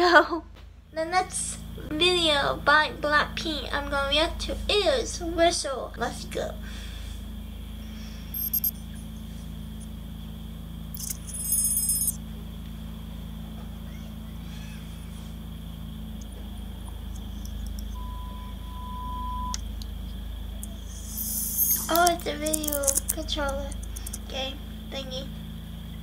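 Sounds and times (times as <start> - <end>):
low electrical hum: 0.0 - 26.0
steady beep: 8.4 - 9.0, 17.9 - 19.6.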